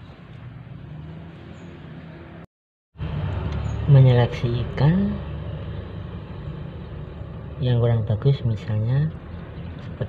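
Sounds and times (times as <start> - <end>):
low background rumble: 3.0 - 10.0.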